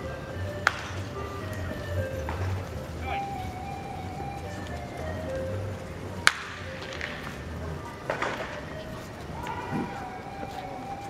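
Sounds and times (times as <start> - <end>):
background music: 0.0 - 11.0
wooden bat hitting ball: 0.6 - 1.1, 6.2 - 7.4, 8.0 - 8.7.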